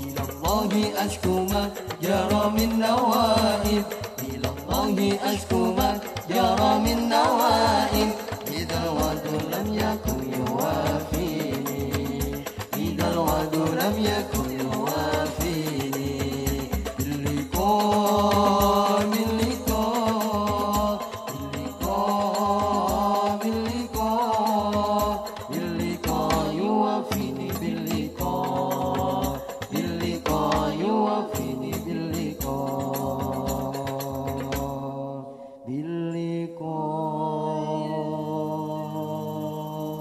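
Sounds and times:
men singing devotional song: 0.0 - 40.0.

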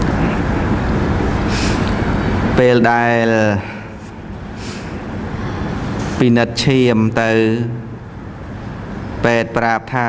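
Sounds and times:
rumbling background noise: 0.0 - 10.0
short hiss: 1.5 - 2.0.

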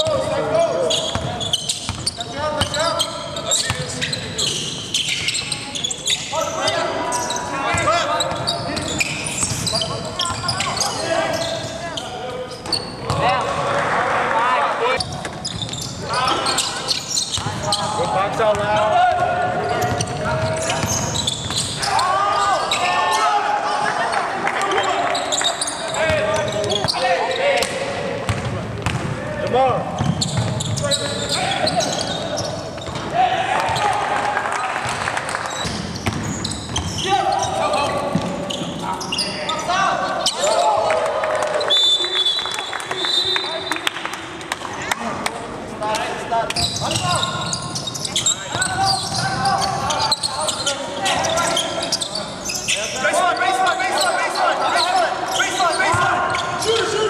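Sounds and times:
players calling out: 45.9 - 57.0.

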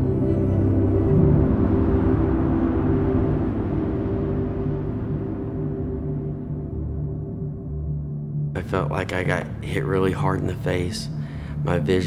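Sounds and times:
deep rumble: 0.0 - 12.0
low ambient drones: 0.0 - 12.0.

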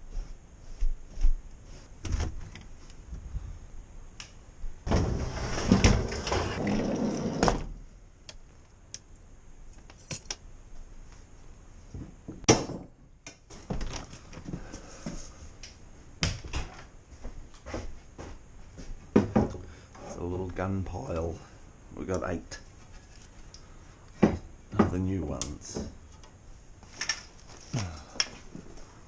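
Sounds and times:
rustle: 22.6 - 24.2.

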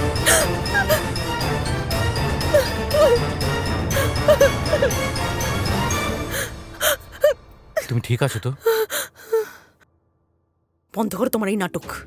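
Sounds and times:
woman whimpering: 0.3 - 1.1, 2.5 - 3.3, 4.0 - 5.0, 8.6 - 9.7.

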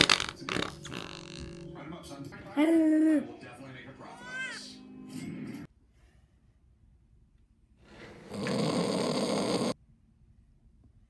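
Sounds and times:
long noisy snore: 8.2 - 9.8.

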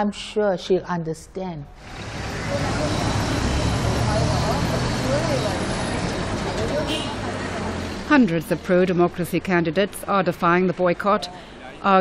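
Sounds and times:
road traffic: 1.7 - 12.0
people's voices: 1.8 - 12.0.

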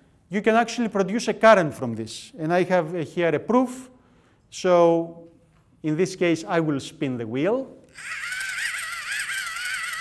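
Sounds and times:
warbling electronic toy tune: 7.9 - 10.0.

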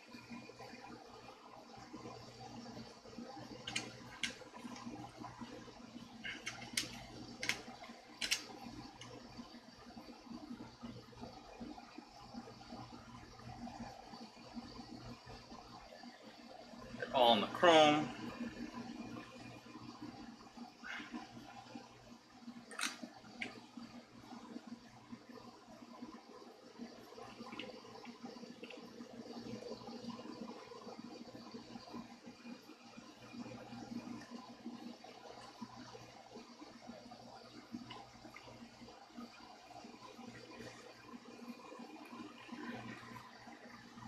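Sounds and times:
low steady hum: 0.0 - 44.0.

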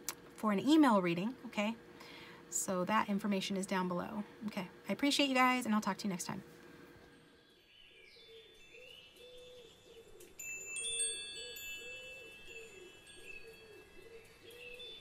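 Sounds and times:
low wavering tone: 7.0 - 15.0
faint chimes ringing: 7.1 - 15.0.

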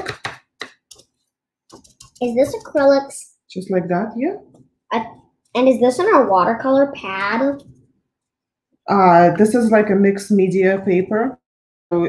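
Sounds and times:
painting supplies tapping and clicking: 0.0 - 3.2, 7.1 - 8.0.

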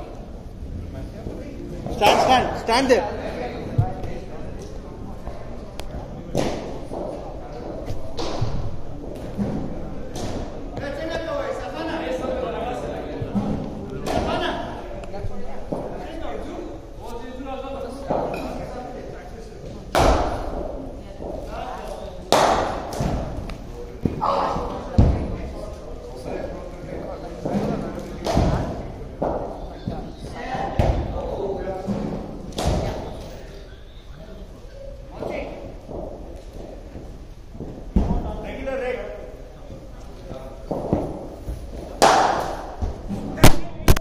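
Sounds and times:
men talking: 0.0 - 43.8.

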